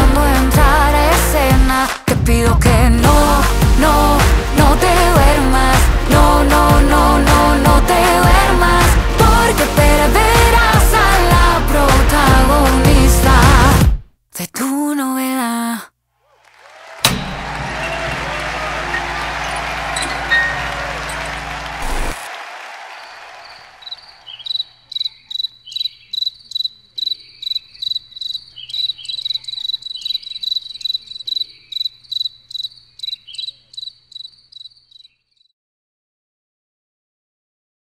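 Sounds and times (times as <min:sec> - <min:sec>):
club crowd noise: 0:16.4 - 0:24.3
cricket chirping: 0:23.0 - 0:35.5.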